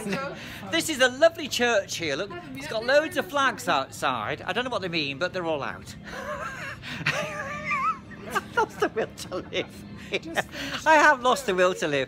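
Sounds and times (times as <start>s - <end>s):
man laughing: 6.0s - 11.7s.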